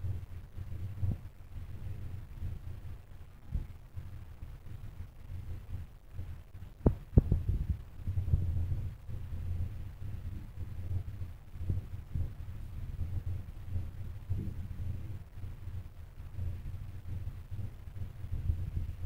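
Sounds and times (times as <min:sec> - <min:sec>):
low uneven microphone rumble: 0:00.0 - 0:19.0.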